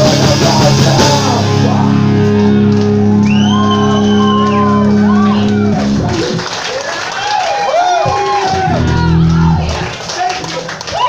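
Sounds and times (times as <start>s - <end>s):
punk rock band chord: 0.0s - 6.5s.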